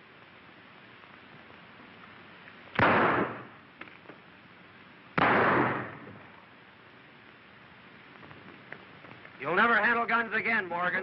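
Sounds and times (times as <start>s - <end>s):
film soundtrack hiss: 0.0s - 11.0s
gunshots: 2.8s - 3.5s, 5.2s - 6.1s.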